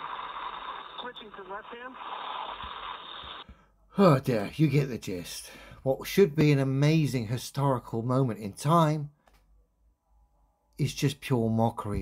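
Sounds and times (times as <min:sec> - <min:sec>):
radio channel hiss: 0:00.0 - 0:03.4.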